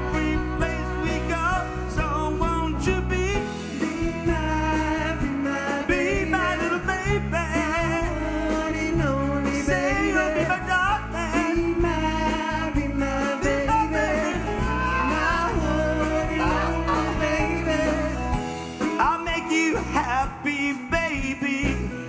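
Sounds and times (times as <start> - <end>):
backing vocalists singing: 0.0 - 21.3
lead singer singing: 0.0 - 22.0
live band playing: 0.0 - 22.0.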